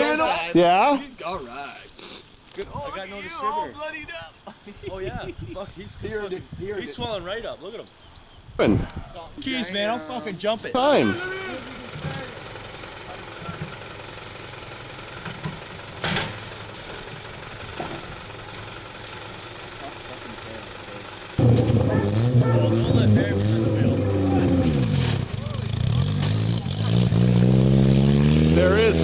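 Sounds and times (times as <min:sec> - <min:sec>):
car engine revving: 0:20.9 - 0:29.0.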